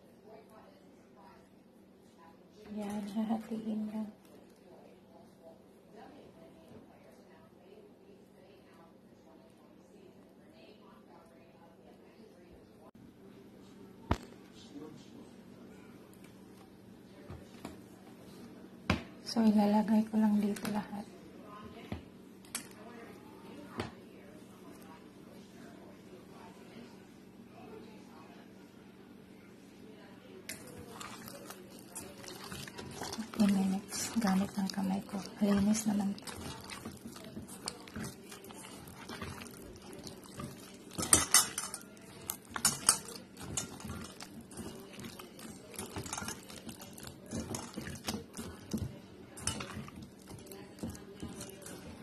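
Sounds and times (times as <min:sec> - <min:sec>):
food clattering in metal bowl: 0:30.5 - 0:52.0.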